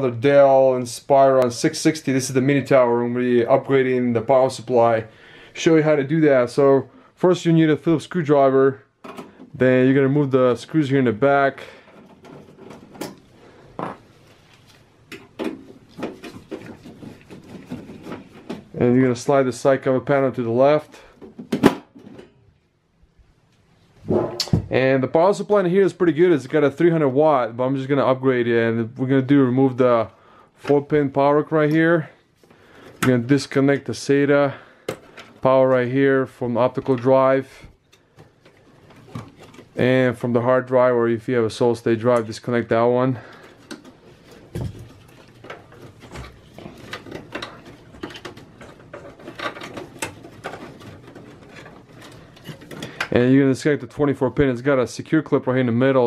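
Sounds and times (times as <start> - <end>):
wires rustling against metal: 9.0 - 22.7, 29.3 - 54.8.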